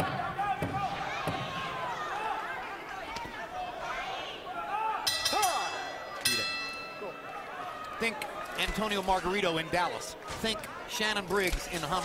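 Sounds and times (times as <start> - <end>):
arena crowd noise: 0.0 - 12.0
boxing ring bell ringing: 5.1 - 7.3.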